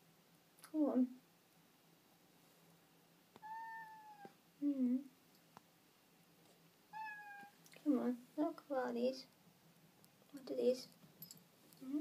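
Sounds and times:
cat meowing: 3.4 - 4.4, 6.9 - 7.6.

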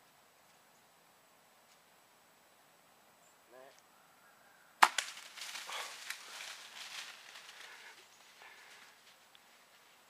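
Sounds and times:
bow shot snap: 4.8 - 5.3
deer crashing through dry leaves: 4.8 - 8.0.

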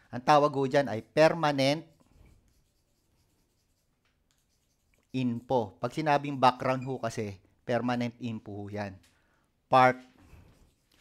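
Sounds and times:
chalk scratching on chalkboard: 0.8 - 6.3, 10.2 - 11.0.

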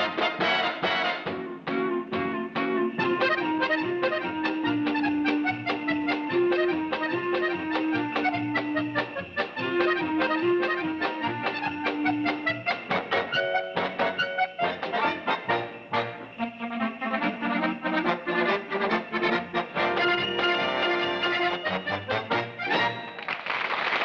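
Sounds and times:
dance orchestra playing a polka: 0.0 - 23.3.

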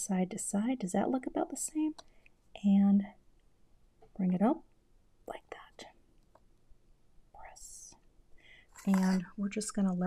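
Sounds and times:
soft whispery hiss: 4.1 - 6.3, 7.2 - 10.0.

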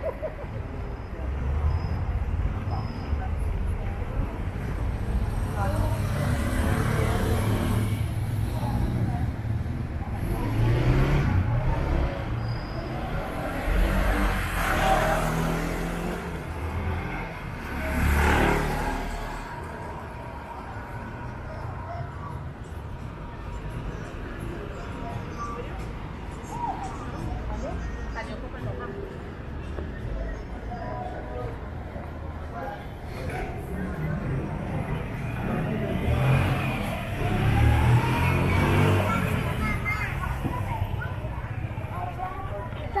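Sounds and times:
indistinct voices: 0.0 - 43.0
vehicles passing: 0.0 - 43.0.

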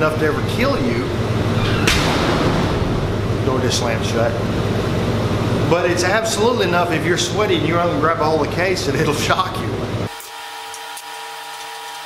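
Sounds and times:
steady low hum: 0.0 - 10.1
door slamming shut: 1.3 - 4.6.

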